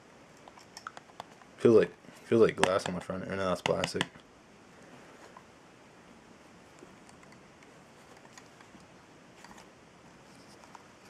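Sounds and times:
small handling clicks and rustles: 6.7s - 11.0s.

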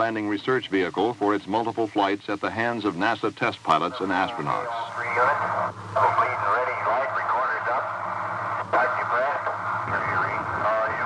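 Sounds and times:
man's voice over radio: 0.0s - 11.0s
steady low hum: 0.0s - 11.0s.

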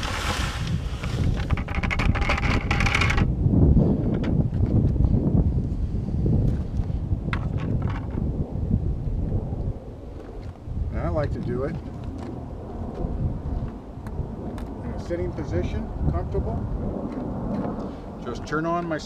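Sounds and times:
wind rumble on microphone: 0.0s - 19.0s.

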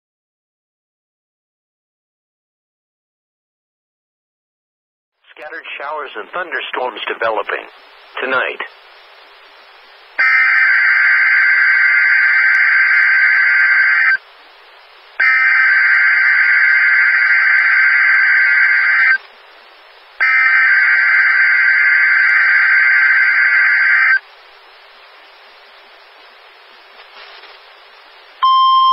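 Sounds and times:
radio hiss: 5.2s - 28.4s
loud buzzing data tone bursts: 10.2s - 14.3s, 15.2s - 19.2s, 20.2s - 24.2s, 28.4s - 28.9s.

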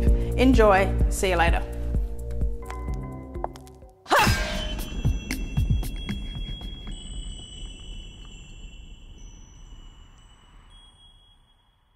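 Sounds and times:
high chime-like ringing tones: 4.1s - 11.9s.

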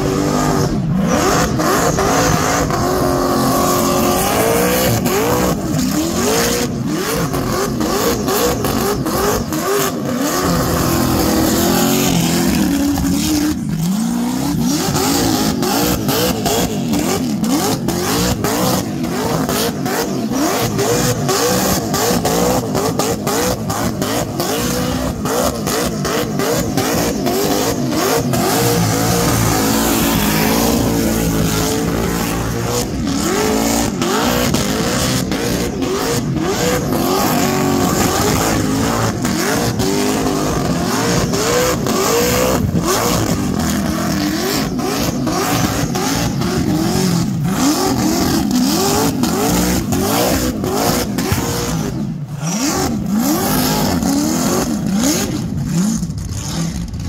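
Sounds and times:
car engine revving hard: 0.0s - 57.0s.

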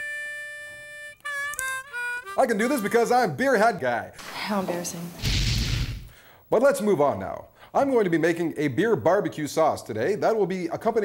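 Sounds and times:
reedy wind instrument notes: 0.0s - 3.4s.

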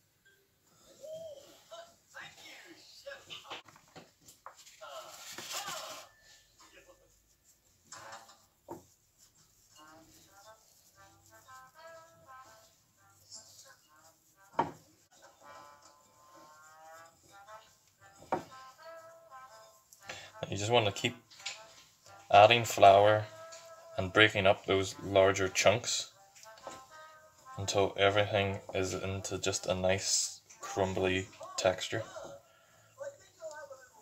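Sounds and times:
television voices: 0.3s - 34.0s.

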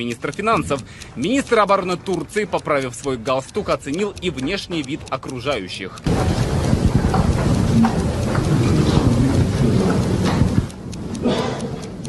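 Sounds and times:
loud steady rumbling: 6.1s - 11.3s.

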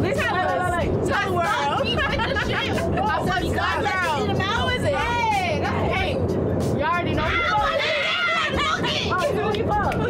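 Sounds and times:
women exclaiming and talking: 0.0s - 10.0s.

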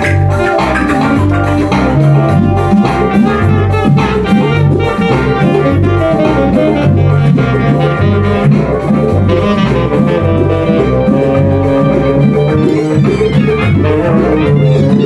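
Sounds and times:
repeating low bass line: 0.0s - 15.0s
saxophone playing: 0.0s - 15.0s.

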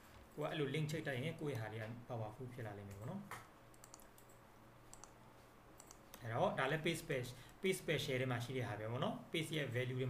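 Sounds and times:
low steady hum: 0.0s - 10.0s
computer mouse clicks: 2.9s - 5.2s, 5.8s - 6.2s.

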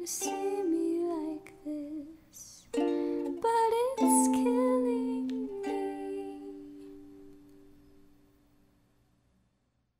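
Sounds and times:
ukulele chord ringing: 0.0s - 1.5s, 2.7s - 8.2s.

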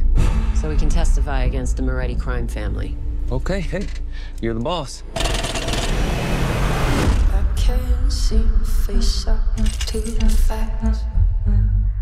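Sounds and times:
propeller plane engine: 5.1s - 7.0s.

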